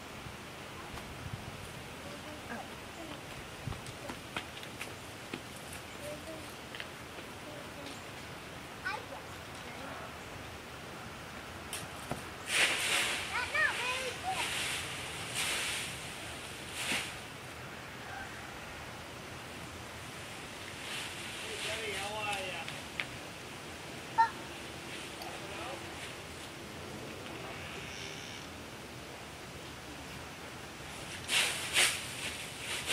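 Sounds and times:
dry leaves crunching and rustling: 12.4s - 17.3s, 20.3s - 23.0s, 30.9s - 32.9s.

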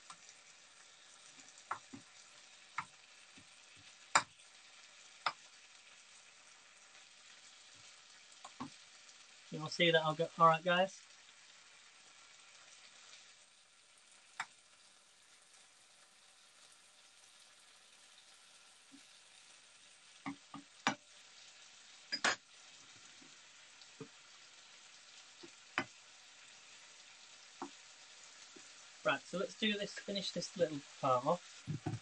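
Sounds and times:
chicken sizzling in a frying pan: 0.0s - 32.0s
utensils knocking against a pan: 22.1s - 22.4s, 31.7s - 32.0s.

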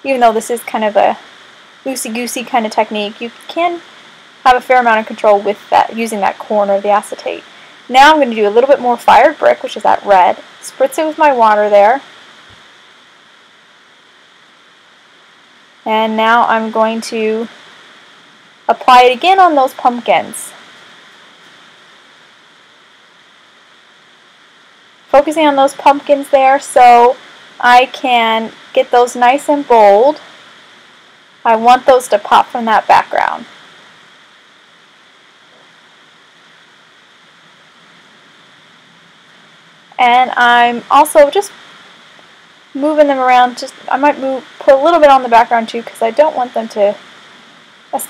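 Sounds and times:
faint background hiss: 0.0s - 48.0s.

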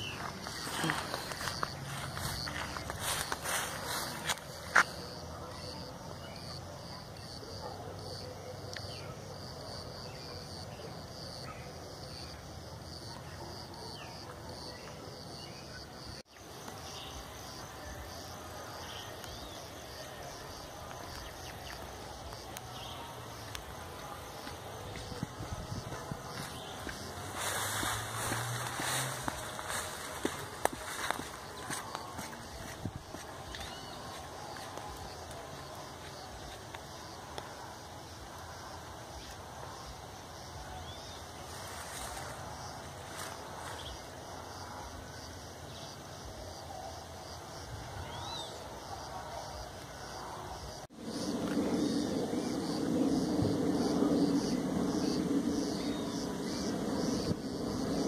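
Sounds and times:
footsteps brushing through tall grass: 0.0s - 4.9s, 23.6s - 36.6s
outdoor background noise: 0.0s - 58.0s.

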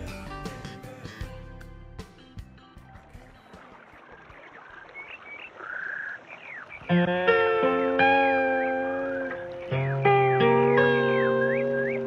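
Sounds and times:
birds chirping: 2.6s - 12.0s
plucked guitar notes: 6.8s - 12.0s.

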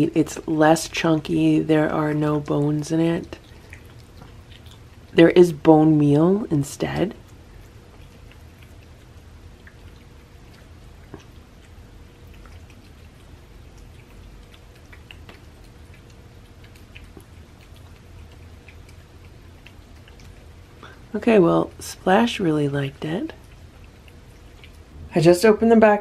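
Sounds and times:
cats chewing and licking: 0.0s - 25.1s
low steady hum: 0.0s - 26.0s.

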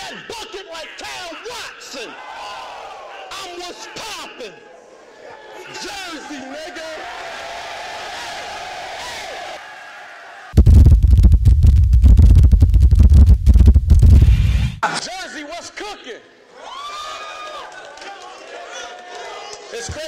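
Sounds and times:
crowd voices and shouts: 0.0s - 10.6s
bass-heavy logo sting: 10.6s - 14.8s.

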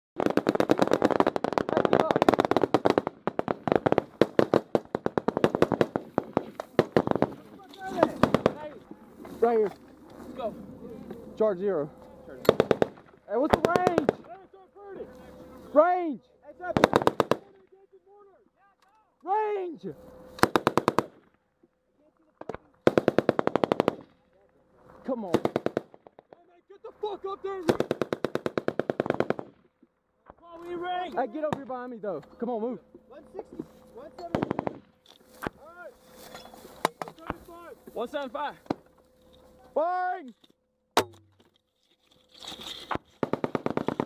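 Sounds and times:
rapid small-arms fire: 0.2s - 8.7s, 12.5s - 14.3s, 16.7s - 17.5s, 20.4s - 21.2s, 22.8s - 24.2s, 25.2s - 26.2s, 27.6s - 29.6s, 34.3s - 34.9s, 43.2s - 44.0s
single gunshots: 12.4s - 14.2s.

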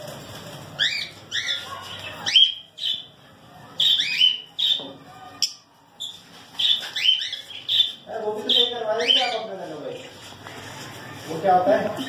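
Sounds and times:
lovebirds chirping and squawking: 0.1s - 10.4s.

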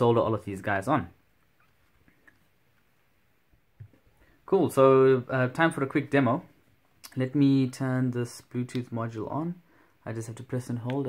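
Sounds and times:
light clicks and taps of handling: 10.8s - 11.0s.

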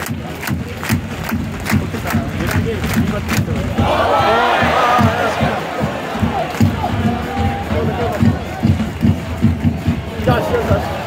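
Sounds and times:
drums beating a steady rhythm: 0.0s - 11.0s
crowd chanting: 3.6s - 11.0s.

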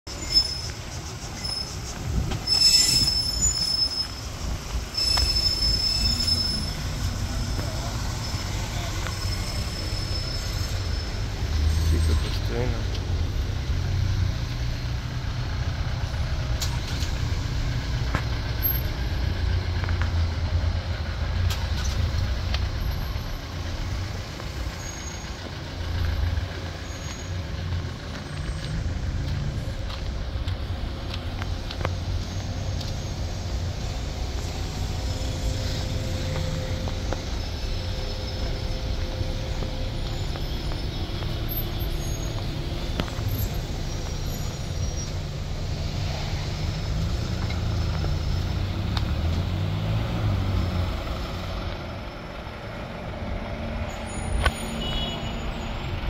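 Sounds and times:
traffic engines idling in a queue: 0.1s - 56.0s.

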